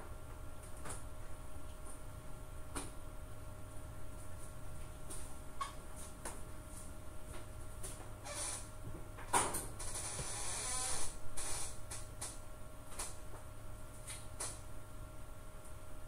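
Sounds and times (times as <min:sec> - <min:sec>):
creaking rustling noise: 0:07.9 - 0:08.8, 0:09.5 - 0:13.2.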